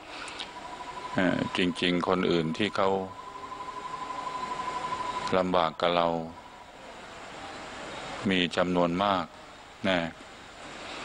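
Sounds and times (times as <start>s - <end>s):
high-pitched tone: 0.0s - 7.3s
background hiss: 0.0s - 11.0s.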